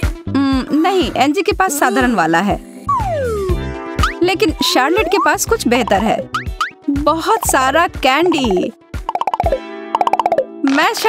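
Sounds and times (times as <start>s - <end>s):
held tone of background music: 0.0s - 11.0s
cartoon plops falling in pitch: 5.0s - 10.7s.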